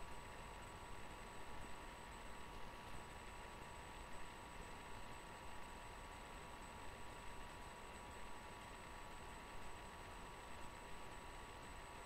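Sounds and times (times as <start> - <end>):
faint thin steady tones: 0.0 - 12.0.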